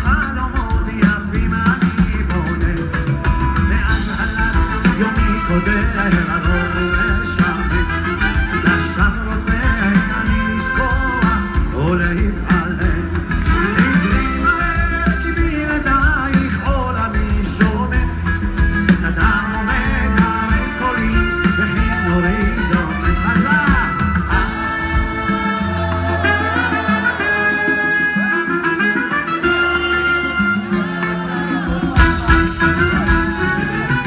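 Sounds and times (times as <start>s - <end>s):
live band music: 0.0s - 34.0s.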